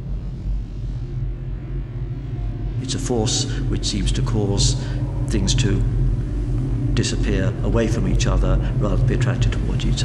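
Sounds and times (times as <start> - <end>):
low drone music: 0.0 - 10.0.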